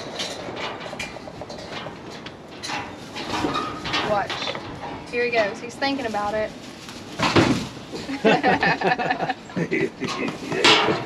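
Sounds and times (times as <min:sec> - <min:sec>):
rustling in straw bedding: 0:05.2 - 0:09.3.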